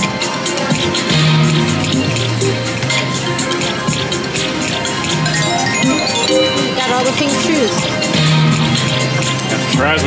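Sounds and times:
electronic slot machine music: 5.2s - 7.9s
quick high clicks and chimes: 5.3s - 7.2s.

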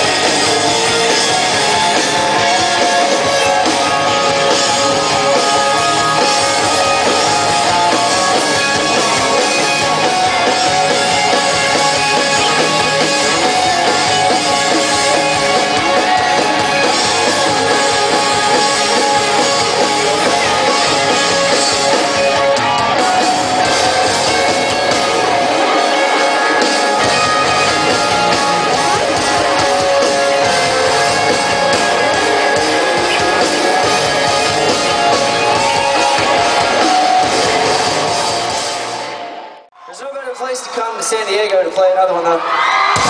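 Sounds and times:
drum kit: 0.0s - 39.4s
bass guitar: 0.0s - 39.7s
distorted electric guitars strumming: 0.0s - 39.7s
live rock band: 0.0s - 39.8s, 40.4s - 43.0s.

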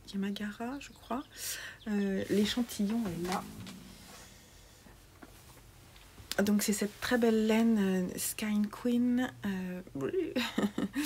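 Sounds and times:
room hiss: 1.3s - 8.4s
faint rustling: 2.0s - 7.5s.

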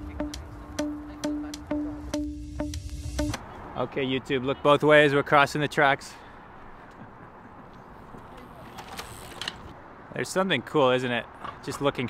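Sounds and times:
distant traffic: 0.0s - 12.0s.

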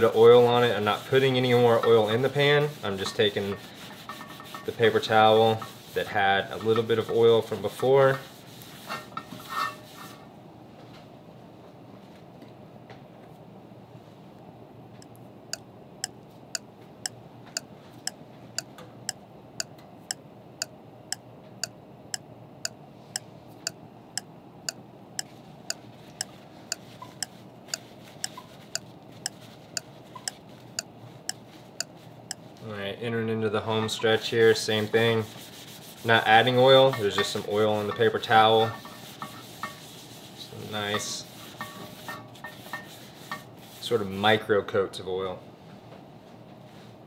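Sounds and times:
paper towel rubbing pan: 0.0s - 10.2s, 26.2s - 32.4s, 34.3s - 44.2s.

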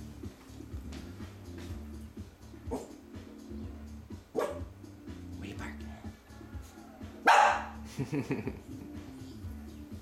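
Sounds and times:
small dog barking: 2.7s - 3.0s, 4.3s - 4.7s, 7.2s - 7.8s.

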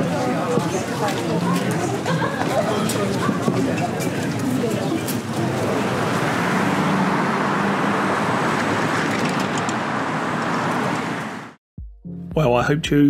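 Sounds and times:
city street traffic: 0.0s - 11.6s.

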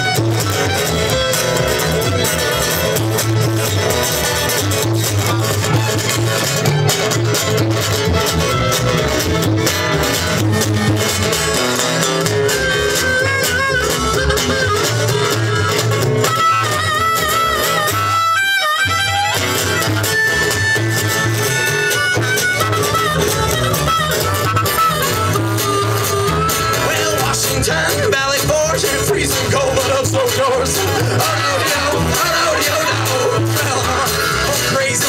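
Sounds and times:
bowed fiddle: 0.0s - 27.0s
acoustic guitar: 0.0s - 35.0s
plucked upright bass: 0.0s - 35.0s.

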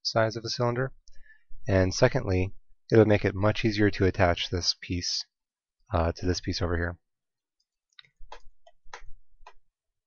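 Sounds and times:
mouse and keyboard clicks: 7.9s - 9.6s.

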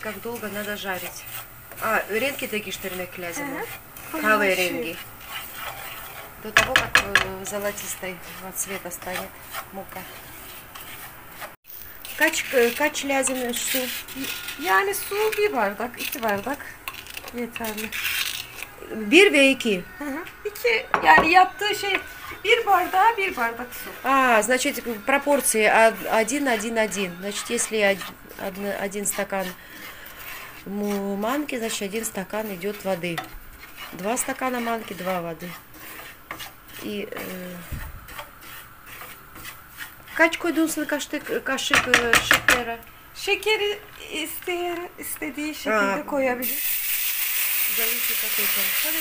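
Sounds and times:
woman speaking: 0.0s - 1.2s, 1.8s - 5.0s, 6.4s - 10.2s, 12.2s - 16.7s, 17.3s - 18.0s, 18.8s - 29.6s, 30.6s - 33.3s, 33.9s - 35.6s, 36.8s - 37.8s, 40.2s - 46.6s, 47.7s - 49.0s
spoon scraping a frying pan: 0.0s - 49.0s.

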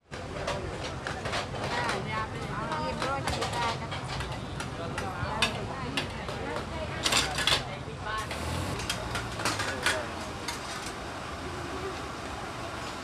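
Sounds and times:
people's voices: 0.0s - 13.0s
metal utensils clanking on pots: 8.3s - 11.0s.

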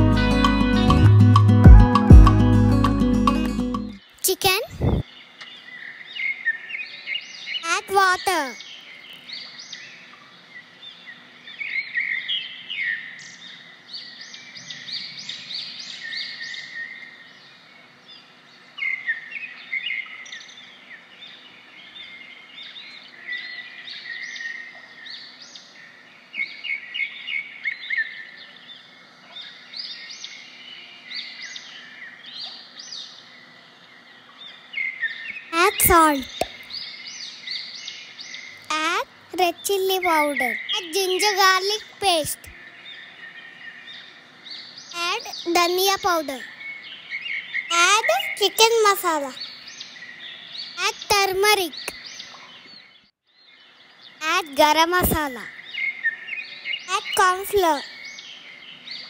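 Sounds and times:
birds chirping and singing: 4.5s - 59.0s.

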